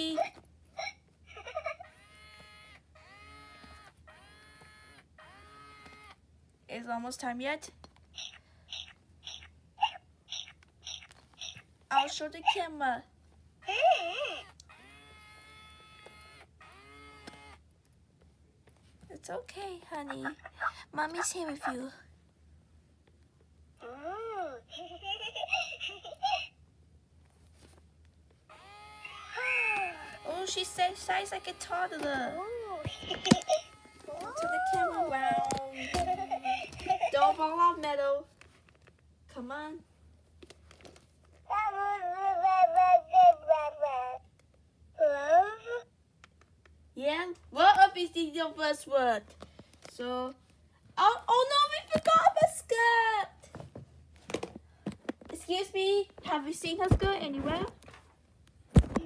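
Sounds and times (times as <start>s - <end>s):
doll crying electronically: 28.5s - 36.6s.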